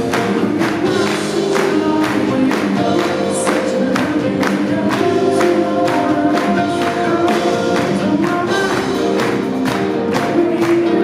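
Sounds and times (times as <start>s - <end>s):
electric guitar: 0.0s - 11.0s
man singing: 0.0s - 11.0s
steady drum beat: 0.0s - 11.0s.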